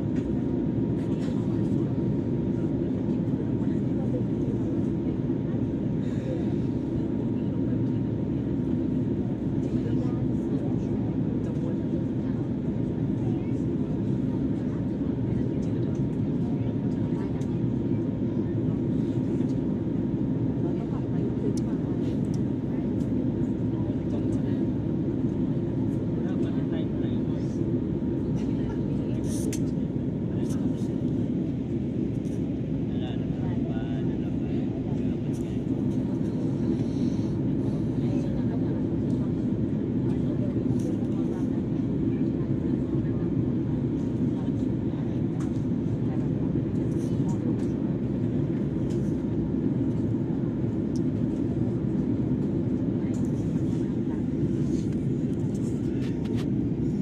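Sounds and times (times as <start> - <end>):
airliner cabin engine rush: 0.0 - 57.0.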